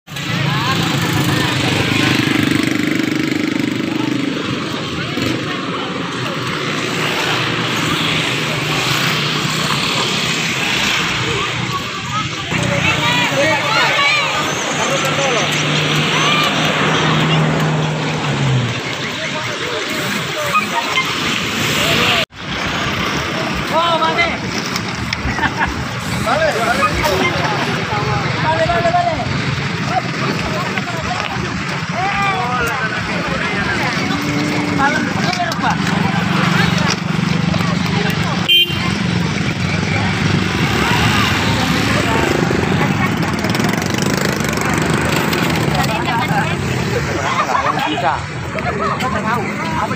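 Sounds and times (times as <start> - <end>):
people talking indistinctly: 0.1 - 49.9
people's voices: 0.1 - 49.9.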